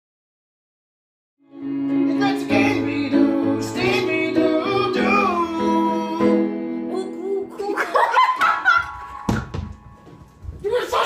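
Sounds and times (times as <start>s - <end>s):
footsteps on floor: 8.9s - 10.8s
people talking: 10.6s - 11.0s.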